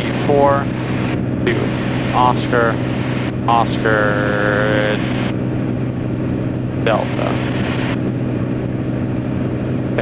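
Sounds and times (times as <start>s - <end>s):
light aircraft engine drone: 0.0s - 10.0s.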